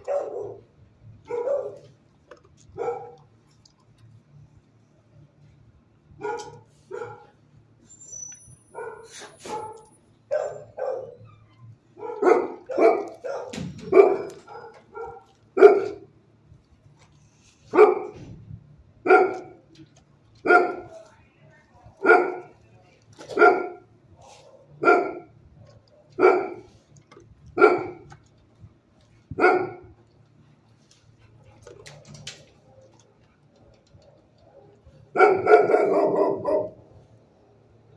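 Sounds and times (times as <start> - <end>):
dog barking: 0.0 - 1.9, 2.8 - 3.2, 6.2 - 7.4, 8.7 - 11.2, 12.0 - 16.1, 17.7 - 18.2, 19.0 - 19.6, 20.4 - 21.0, 22.0 - 22.6, 23.2 - 25.3, 26.0 - 26.7, 27.6 - 28.1, 29.4 - 29.9, 34.5 - 36.8.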